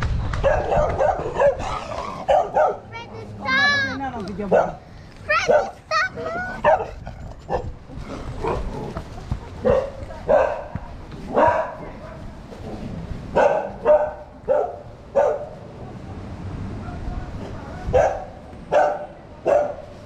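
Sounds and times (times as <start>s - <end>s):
dog barking: 0.4s - 2.9s, 4.5s - 4.8s, 5.4s - 5.8s, 6.6s - 7.7s, 9.6s - 12.3s, 13.4s - 15.6s, 17.9s - 20.0s.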